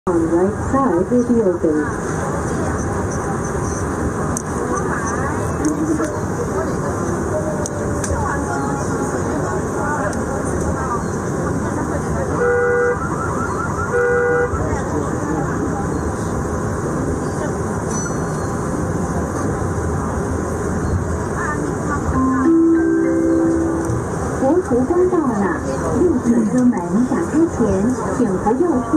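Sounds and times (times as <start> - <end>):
metro train rumble: 0.1 - 28.9
short electronic beeps: 12.8 - 14.7.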